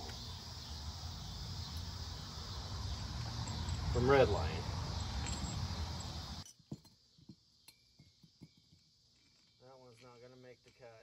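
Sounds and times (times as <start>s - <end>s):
light metallic clinks: 2.9s - 4.3s, 4.9s - 7.0s.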